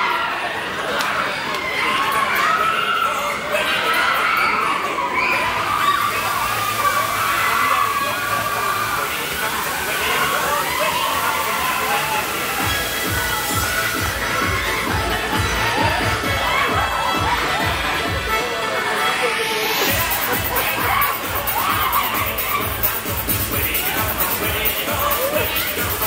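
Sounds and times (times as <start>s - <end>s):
riders shouting and cheering: 0.0s - 26.0s
steady rushing hiss: 5.6s - 16.2s, 19.4s - 26.0s
music over sound system: 5.8s - 26.0s
heavy bass beat: 11.6s - 18.4s, 19.8s - 26.0s.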